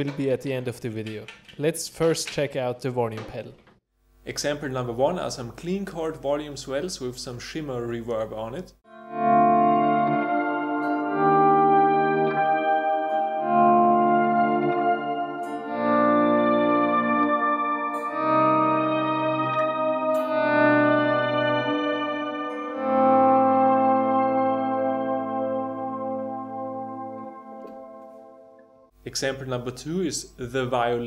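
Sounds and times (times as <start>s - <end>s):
electric guitar chords with reverb: 8.9s - 28.9s.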